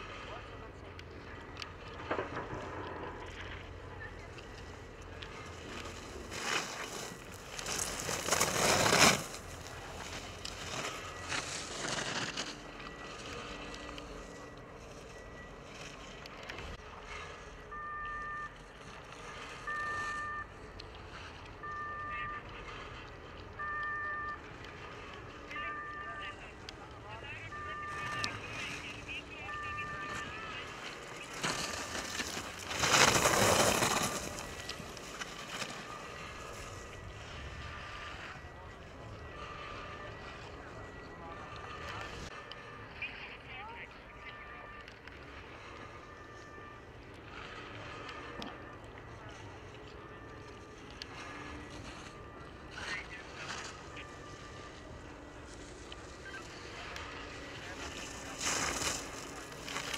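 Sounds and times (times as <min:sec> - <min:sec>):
ski edges scraping snow: 0:05.3 - 0:16.2, 0:27.7 - 0:38.4, 0:50.8 - 0:59.9
short electronic beep: 0:10.7 - 0:18.6, 0:19.2 - 0:20.7, 0:21.6 - 0:22.9, 0:23.5 - 0:44.8.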